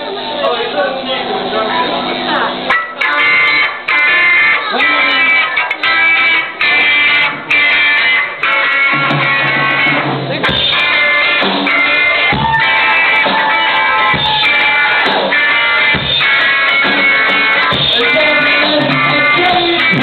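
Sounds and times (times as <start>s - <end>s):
distorted electric guitar chords: 0.0s - 20.0s.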